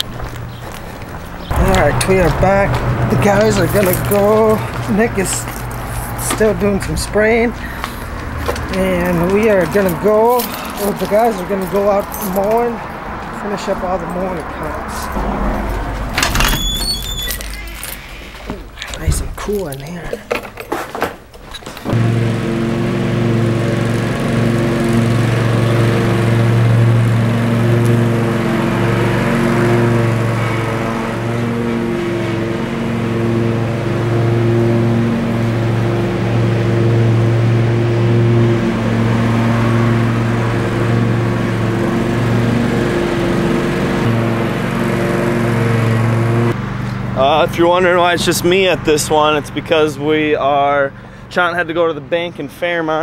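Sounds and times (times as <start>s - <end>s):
mower engine running: 0.0s - 18.8s, 21.8s - 51.3s.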